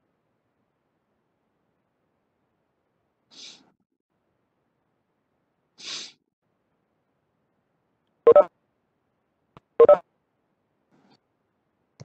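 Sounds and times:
electronic double beeps: 0:08.3 - 0:08.5, 0:09.8 - 0:10.0.

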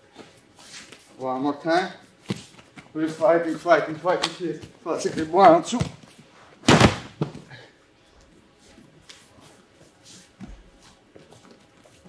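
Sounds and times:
bodies thudding on mat: 0:06.6 - 0:07.5.

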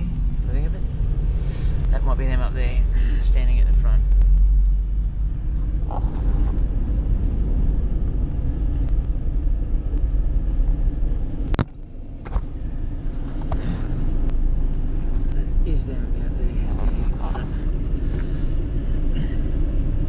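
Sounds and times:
engine low rumble inside cabin: 0:00.0 - 0:20.0.

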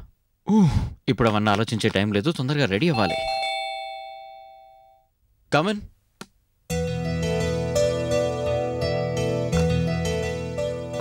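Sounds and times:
doorbell chime: 0:02.9 - 0:05.1.

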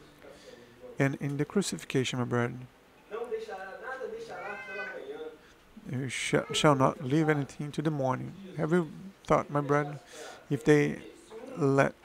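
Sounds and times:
man speaking: 0:00.3 - 0:12.0.

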